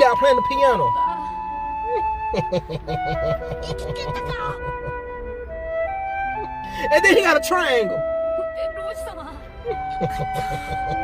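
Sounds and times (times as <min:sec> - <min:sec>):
flute playing slow melody: 0:00.0 - 0:11.0.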